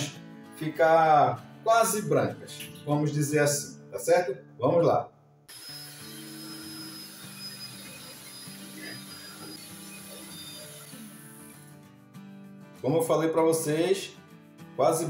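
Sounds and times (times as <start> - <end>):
quiet background music: 0.0 - 15.0
electric hand mixer running: 5.5 - 11.8.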